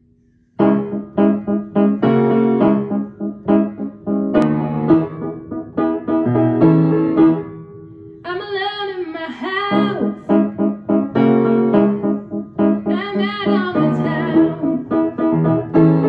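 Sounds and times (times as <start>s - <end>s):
piano playing chords: 0.6s - 8.4s, 9.6s - 16.0s
woman singing: 8.3s - 10.3s, 12.9s - 14.8s.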